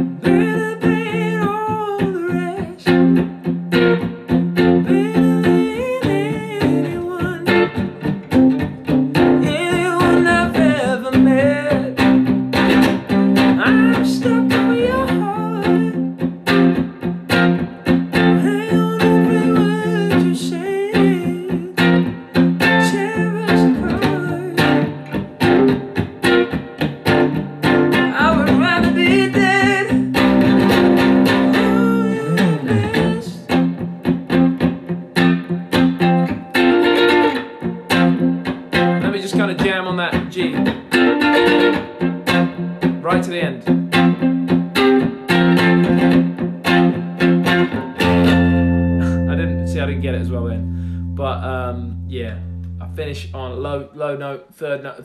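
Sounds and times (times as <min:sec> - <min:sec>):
electric guitar chord strokes: 0:11.9 - 0:39.0, 0:43.7 - 0:53.8.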